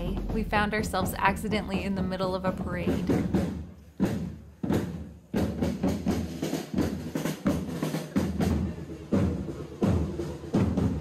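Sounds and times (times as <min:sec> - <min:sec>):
parade drum strikes: 0:00.0 - 0:11.0.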